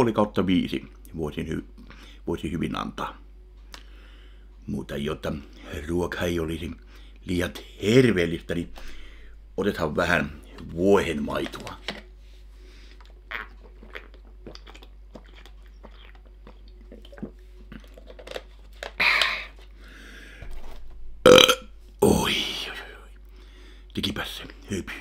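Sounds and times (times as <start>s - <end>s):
breathy exhale: 8.8s - 9.4s, 19.0s - 20.5s
man burping loudly: 21.2s - 22.5s.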